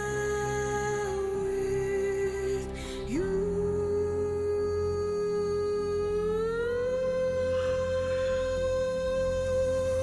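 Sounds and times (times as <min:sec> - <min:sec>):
soft backing music: 0:00.0 - 0:10.0
woman singing long note: 0:00.0 - 0:10.0.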